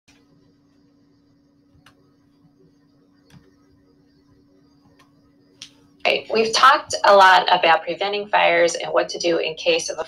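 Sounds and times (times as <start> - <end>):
faint steady hum: 0.1 - 10.0
computer mouse clicking: 3.2 - 3.6.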